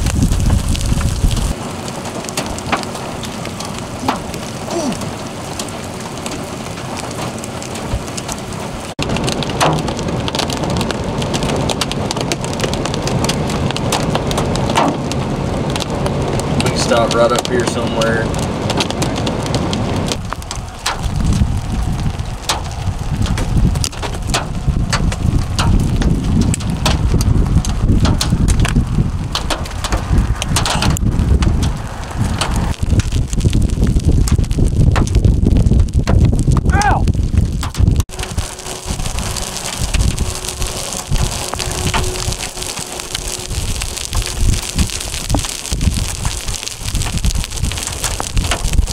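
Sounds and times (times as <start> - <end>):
gusty wind buffeting microphone: 0.0 - 48.9
hissing wind: 0.0 - 48.9.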